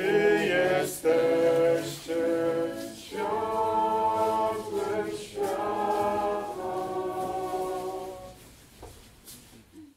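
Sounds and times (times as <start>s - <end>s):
group singing unaccompanied: 0.0s - 8.4s.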